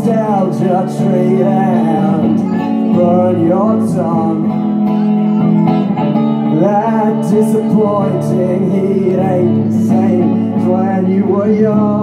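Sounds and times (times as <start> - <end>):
electric guitar strumming: 0.0 - 12.0
man singing: 0.0 - 12.0.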